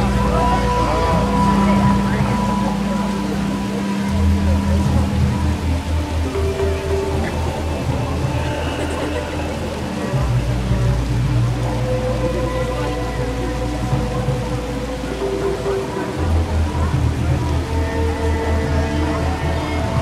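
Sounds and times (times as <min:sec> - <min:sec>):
deep rumble: 0:00.0 - 0:20.0
pulsing low drumbeat: 0:00.0 - 0:20.0.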